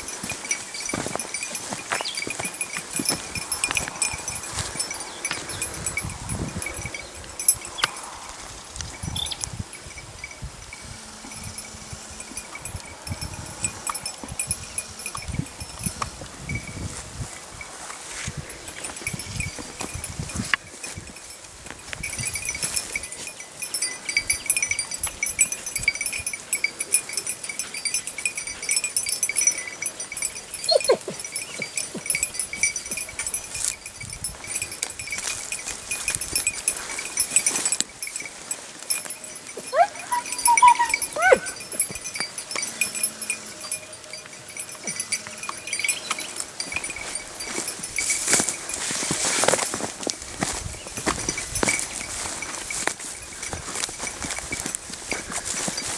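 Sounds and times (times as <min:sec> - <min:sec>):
collar bell jingling: 0:00.0 - 0:55.9
dog yelping: 0:30.6 - 0:31.2, 0:39.6 - 0:41.8.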